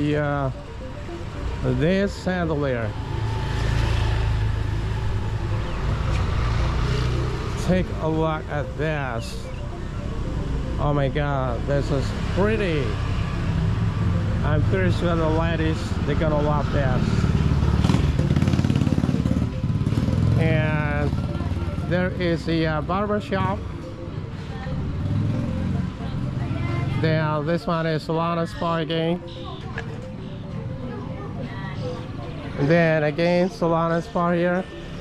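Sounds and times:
motor scooter engine passing: 2.4 - 7.8, 16.0 - 22.7, 23.5 - 27.2
motor scooter engine running: 17.3 - 22.0.

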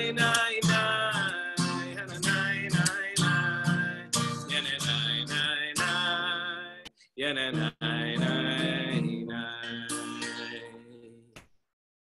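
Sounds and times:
acoustic guitar: 0.0 - 11.2
man singing: 0.0 - 11.4.

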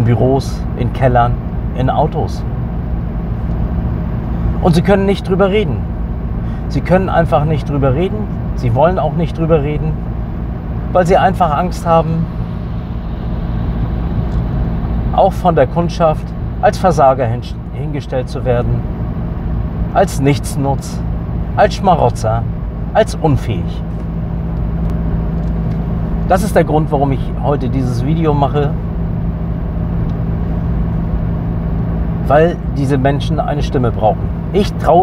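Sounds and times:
car rumble from inside cabin: 0.0 - 35.0.

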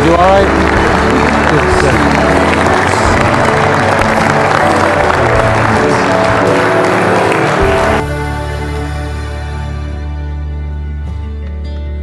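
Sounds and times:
guests clapping: 0.0 - 8.6
music with long held notes: 0.0 - 12.0.

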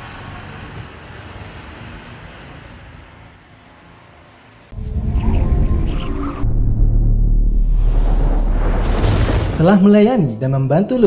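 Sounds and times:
low hazy sound wash: 4.8 - 9.6.

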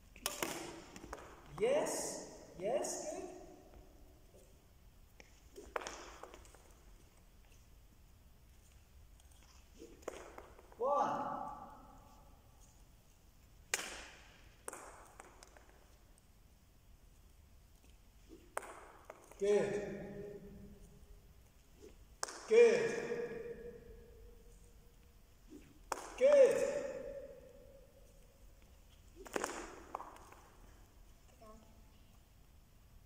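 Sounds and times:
badminton racket smacking shuttlecock: 0.1 - 1.5, 4.3 - 7.8, 8.5 - 10.8, 20.7 - 22.4, 24.5 - 31.0
racket striking shuttlecock: 0.1 - 1.5, 5.2 - 6.9, 9.4 - 10.8, 13.7 - 15.9, 18.3 - 20.4, 29.0 - 30.7.

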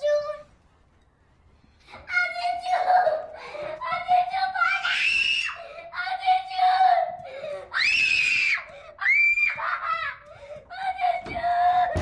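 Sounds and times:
long held screams: 4.6 - 5.7, 7.7 - 10.3.

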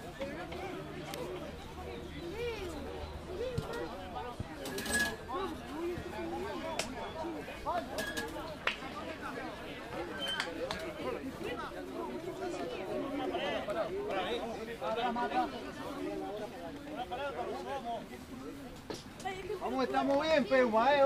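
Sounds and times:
overlapping chatter: 0.0 - 21.0.

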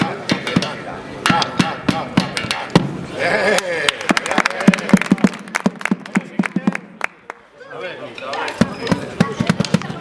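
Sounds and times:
children beating drums with sticks: 0.0 - 3.0, 8.3 - 10.0.

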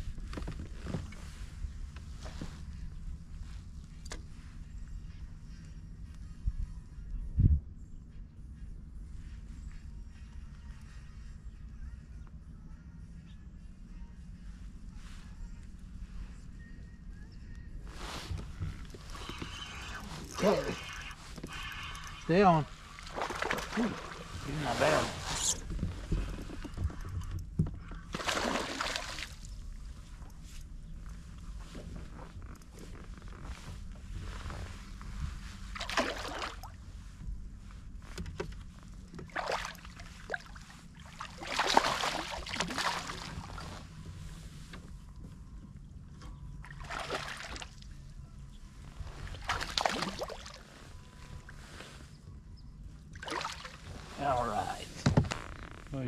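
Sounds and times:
low steady rumble: 0.0 - 56.0.

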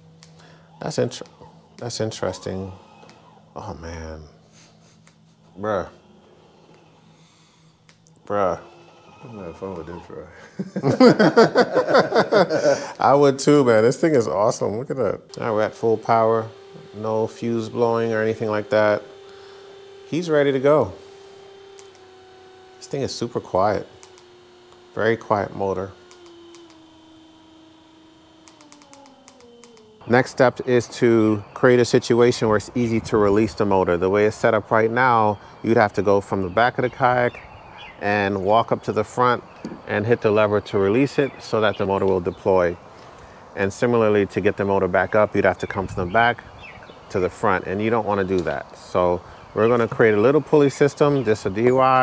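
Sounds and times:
electric motor hum and whine: 0.0 - 52.0
click: 7.8 - 8.2, 21.7 - 22.1, 23.9 - 24.9, 26.0 - 26.8, 28.4 - 29.9.

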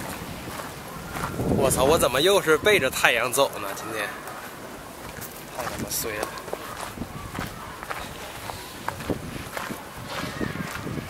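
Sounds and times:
footsteps on paved path: 0.0 - 11.0.

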